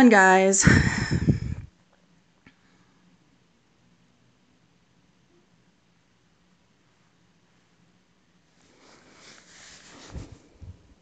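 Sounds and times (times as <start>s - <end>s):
dull low thumps: 0.6s - 1.7s
soft rustle on plastic tray: 8.5s - 11.0s.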